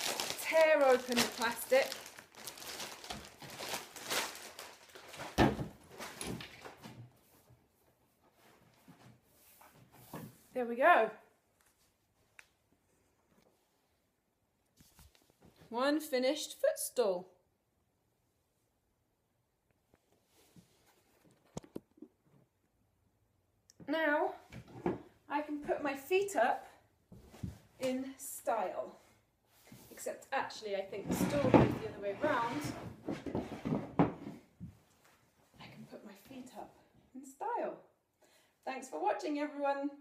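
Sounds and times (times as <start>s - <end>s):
plastic wrapping rustling: 0.0s - 6.8s.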